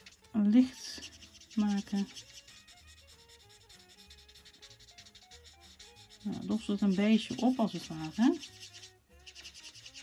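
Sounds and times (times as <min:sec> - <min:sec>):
marker nib rubbing on card: 0:00.0 - 0:10.0
quiet background music: 0:00.0 - 0:10.0.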